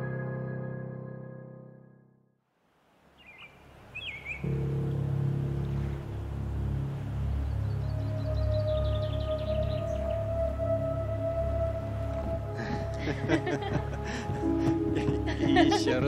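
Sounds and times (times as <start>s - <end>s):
bird chirps: 3.2s - 4.6s, 7.3s - 10.8s
sustained ambient chord: 4.2s - 16.0s
high held note: 4.4s - 16.0s.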